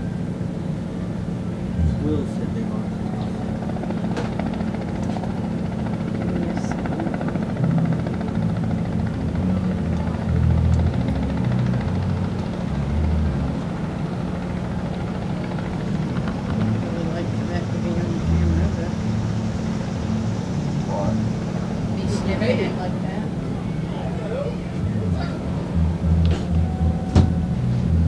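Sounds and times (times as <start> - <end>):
low mechanical hum: 0.0 - 28.0
irregular low rumbles: 1.6 - 28.0.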